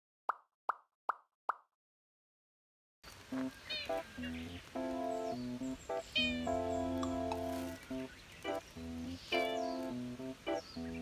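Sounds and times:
background music: 3.4s - 11.0s.

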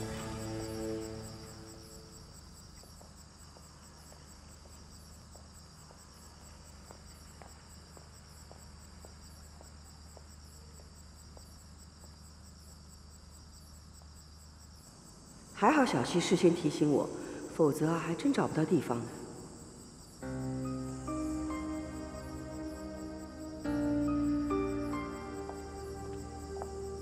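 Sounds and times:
music cue: 0.0s - 2.2s, 20.2s - 27.0s
crickets chirping: 0.0s - 27.0s.

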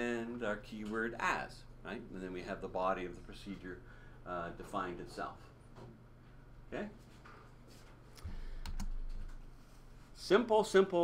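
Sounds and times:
computer key clicks: 8.6s - 9.4s.

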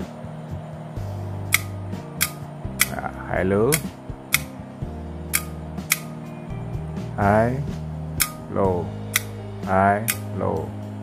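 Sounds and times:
background music: 0.0s - 11.0s
headlight switch clicks: 1.5s - 3.0s, 3.7s - 4.5s, 5.3s - 6.1s, 8.2s - 8.4s, 9.1s - 9.4s, 10.0s - 10.3s.

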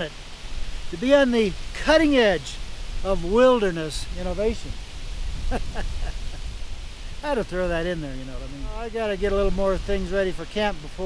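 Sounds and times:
wind buffeting microphone: 0.4s - 11.0s
man chuckling: 5.4s - 6.7s.

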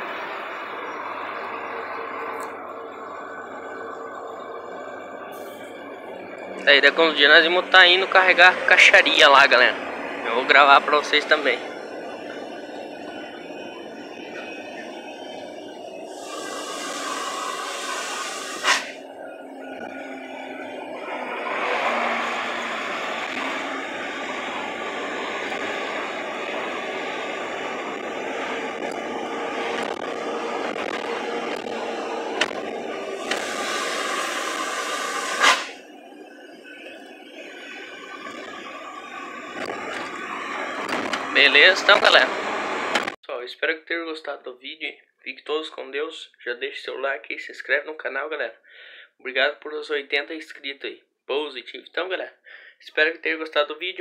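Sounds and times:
truck engine and road noise: 0.0s - 43.2s
air hiss: 16.1s - 19.0s, 33.2s - 35.8s.

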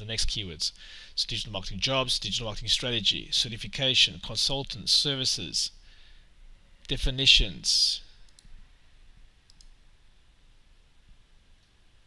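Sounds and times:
faint mouse clicks: 8.2s - 8.6s, 9.5s - 9.8s.

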